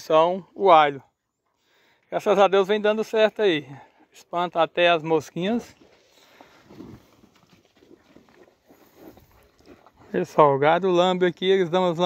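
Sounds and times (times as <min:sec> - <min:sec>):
cattle munching dry feed: 0:05.5 - 0:10.4.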